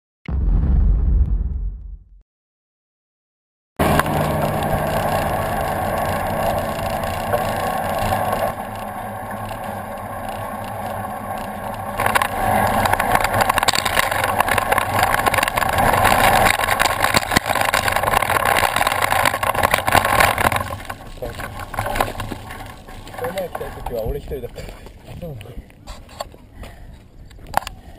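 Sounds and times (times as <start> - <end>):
car engine humming: 3.8 - 25.0
bicycle tyre and road noise: 3.8 - 27.9.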